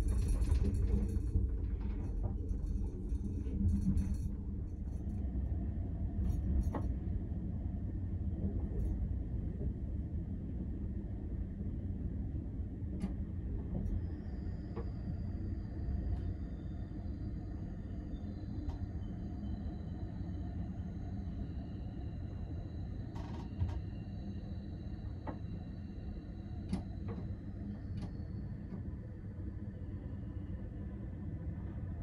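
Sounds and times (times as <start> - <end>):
faint high-pitched whines: 4.9 - 32.0.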